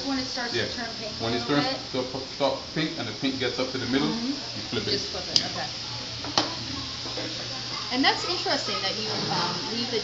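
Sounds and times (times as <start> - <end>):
shrimp sizzling in a pan: 0.0 - 10.0.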